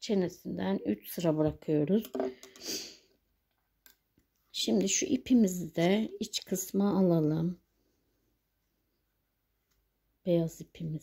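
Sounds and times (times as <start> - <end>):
woman's voice: 0.0 - 2.4, 4.5 - 7.6, 10.2 - 11.0
breath: 2.3 - 3.1.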